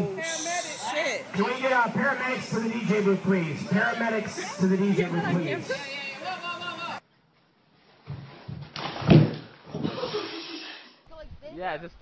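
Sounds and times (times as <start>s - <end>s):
man's voice: 0.0s - 7.0s
voices: 0.0s - 7.0s.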